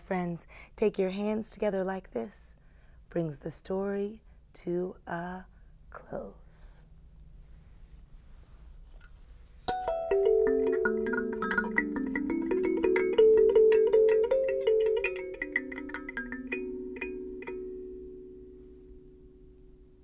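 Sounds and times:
kalimba plucked notes: 0:09.7 - 0:19.6.

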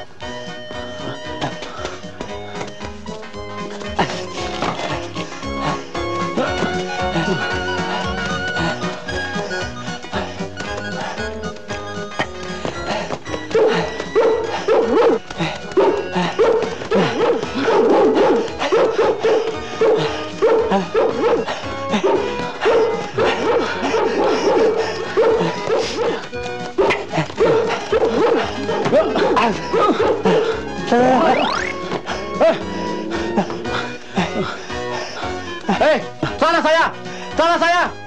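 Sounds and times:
background music: 0:00.0 - 0:38.0
dog barking: 0:13.5 - 0:30.6.

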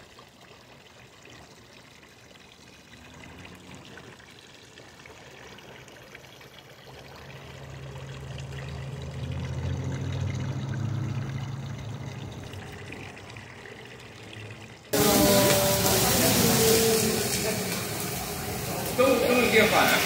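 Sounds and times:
fountain water splashing: 0:00.0 - 0:20.0
low hum: 0:07.4 - 0:13.4.

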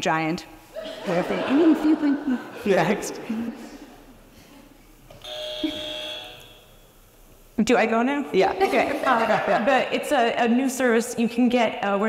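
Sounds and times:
electronic buzzer tone: 0:05.2 - 0:06.8.

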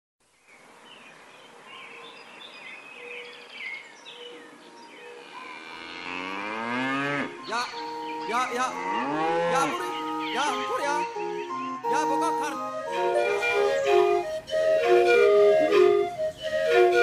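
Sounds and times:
cow mooing: 0:05.2 - 0:07.4, 0:08.6 - 0:10.6.

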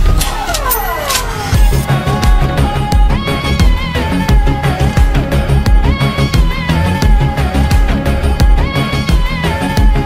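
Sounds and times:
heavy bass beats: 0:01.6 - 0:10.0.

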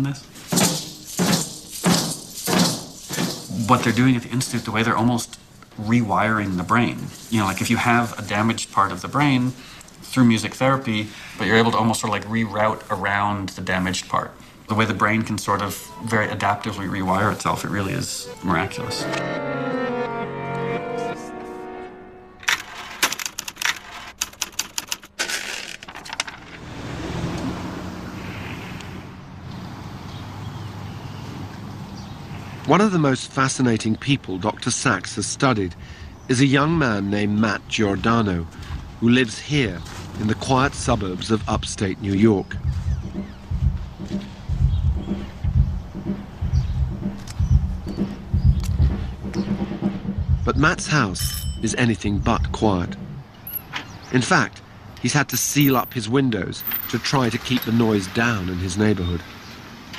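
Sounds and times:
muffled drum kit thuds: 0:40.6 - 0:53.3.

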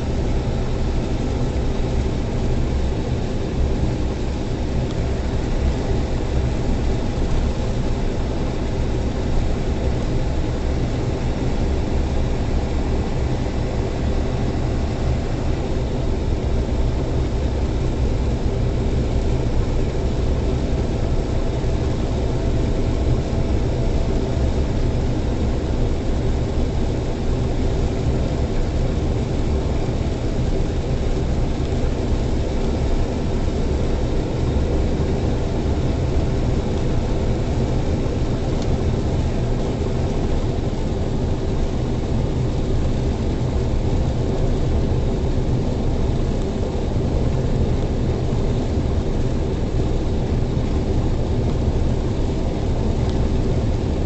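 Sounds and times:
truck diesel engine drone: 0:00.0 - 0:54.0.

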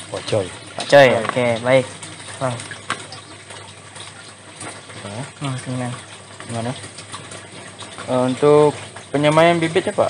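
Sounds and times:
water rushing through pipes: 0:00.0 - 0:10.0.

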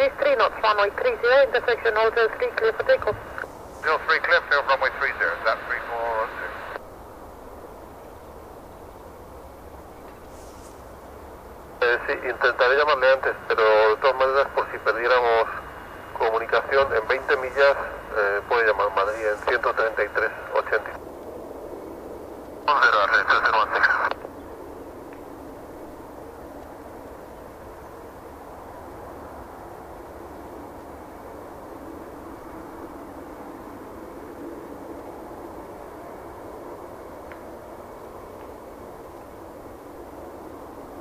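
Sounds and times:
radio transmission: 0:00.0 - 0:06.8, 0:11.8 - 0:21.0, 0:22.6 - 0:24.3
distant jet engines: 0:00.0 - 0:41.0
faint hiss: 0:00.1 - 0:21.0.

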